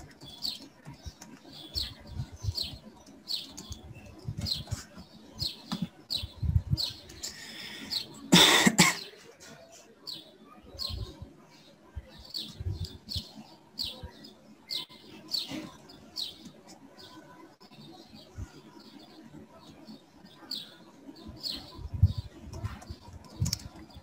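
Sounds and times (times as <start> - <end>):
small bird chirping: 0.0 - 8.2
loud cough: 8.3 - 9.2.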